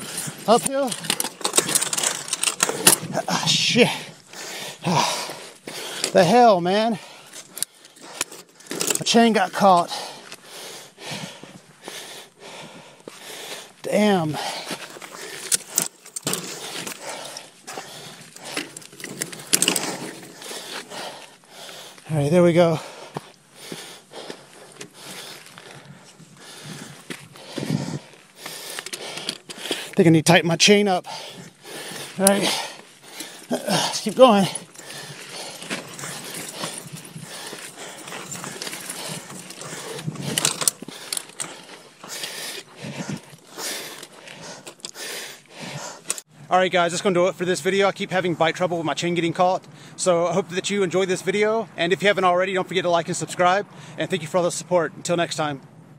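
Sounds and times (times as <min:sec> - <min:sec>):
person breathing hard: 0:00.0 - 0:06.2, 0:06.9 - 0:09.0, 0:09.6 - 0:22.1, 0:22.7 - 0:30.0, 0:31.0 - 0:46.3, 0:53.7 - 0:54.0
bike chain clicking and rattling: 0:00.0 - 0:46.3.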